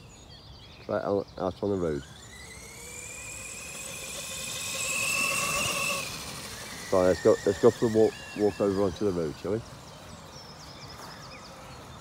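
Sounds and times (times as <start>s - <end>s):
rc truck electric motor whining: 1.6s - 10.7s.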